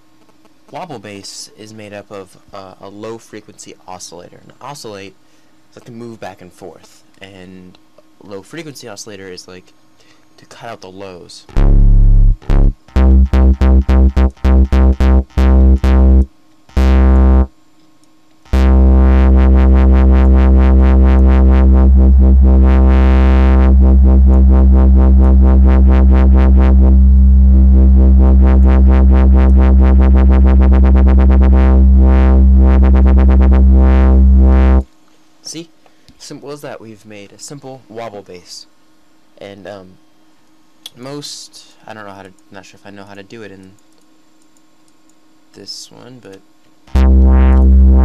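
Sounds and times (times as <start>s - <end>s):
short bass stabs: 11.5s - 17.5s, 18.5s - 34.9s, 46.9s - 48.0s
synth wobble bass: 11.5s - 17.5s, 18.5s - 34.8s, 46.9s - 48.0s.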